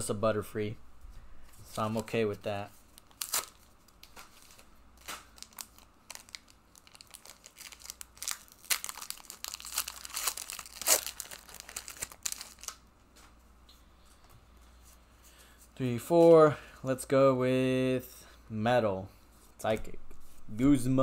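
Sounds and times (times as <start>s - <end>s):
foil wrapper crinkling and tearing: 2.9s - 12.8s.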